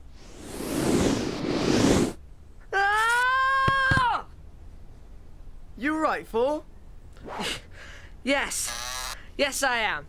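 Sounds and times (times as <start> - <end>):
whoosh: 0.1 - 2.2.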